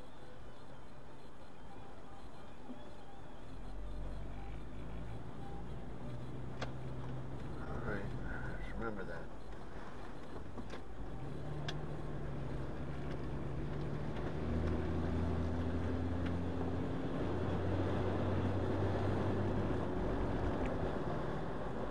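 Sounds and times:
road noise: 0.0 - 21.9
vehicle engine running: 3.0 - 21.9.

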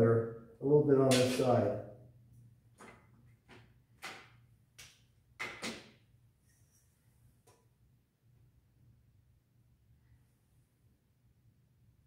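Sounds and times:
low room hum: 6.0 - 12.0.

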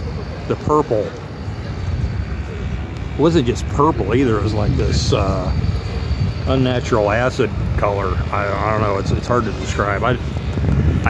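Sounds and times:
distant engine rumble: 0.0 - 11.0.

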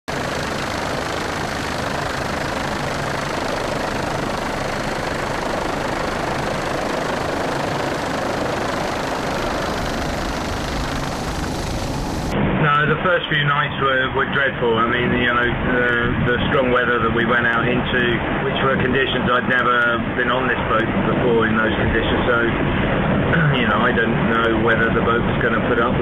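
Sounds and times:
helicopter engine and rotor: 0.1 - 13.0, 13.8 - 26.0.

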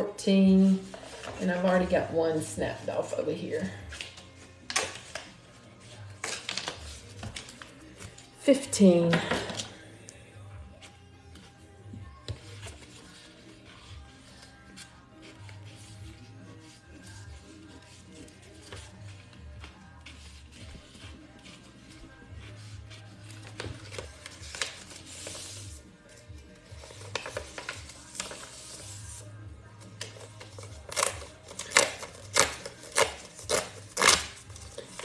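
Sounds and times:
quiet background music with bass: 0.0 - 35.0
paper being folded and crumpled: 0.7 - 1.8, 3.9 - 8.3, 12.4 - 35.0
sharp paper crackles: 26.8 - 29.2.

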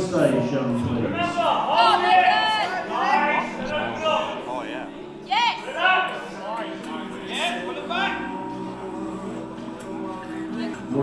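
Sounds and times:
background music in a hall: 0.0 - 11.0.

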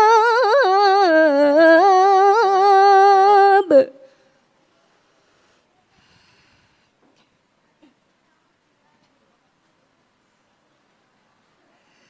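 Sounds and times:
faint intake of breath: 4.0 - 7.0, 11.6 - 12.0.

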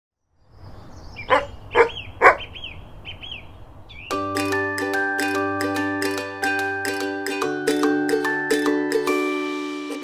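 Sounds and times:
birds chirping: 0.2 - 4.2
dog barking: 1.2 - 2.5.

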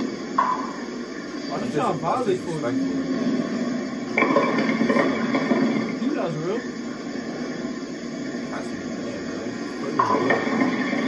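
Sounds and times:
people talking: 1.5 - 2.9, 6.0 - 6.7, 8.5 - 10.7.

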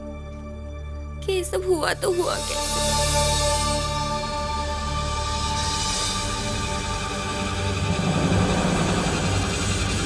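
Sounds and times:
low rumbling soundtrack drone: 0.0 - 10.0.

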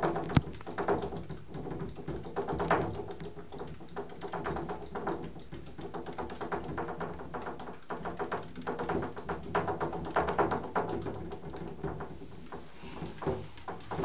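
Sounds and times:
hedgehog running in exercise wheel: 0.0 - 14.0.

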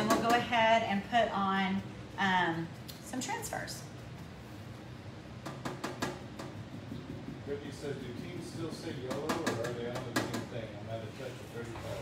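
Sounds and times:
paintbrush tapping on metal: 9.0 - 10.5.

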